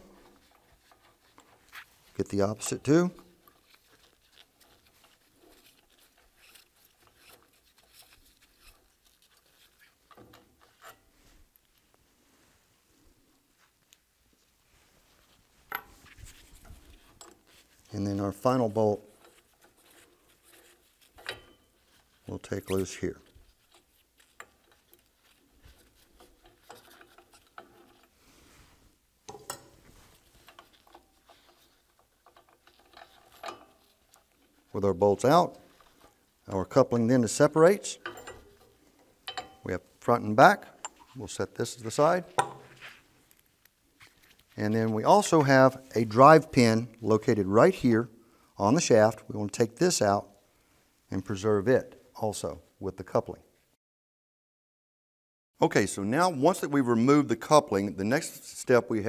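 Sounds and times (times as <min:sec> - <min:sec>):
gloved hands handling metal parts: 0:00.0 - 0:48.0.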